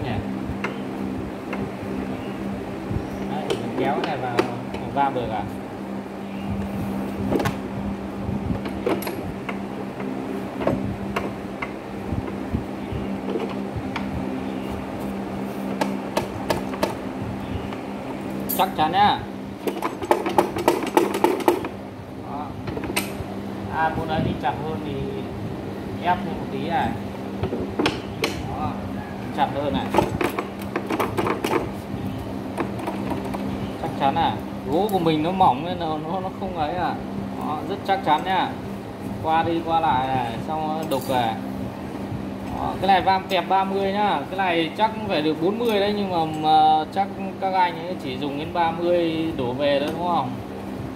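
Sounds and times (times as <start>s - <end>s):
steady low hum: 0.0s - 50.9s
metal clicks and knocks of mortiser: 19.6s - 21.7s.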